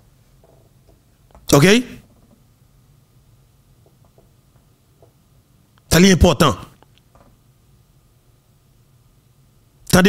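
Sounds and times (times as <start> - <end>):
man speaking into a microphone: 1.5 - 2.0, 5.9 - 6.8.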